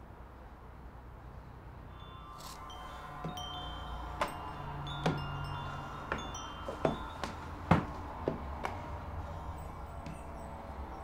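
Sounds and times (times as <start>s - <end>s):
low hum: 1.2s - 11.0s
metallic chiming: 1.8s - 11.0s.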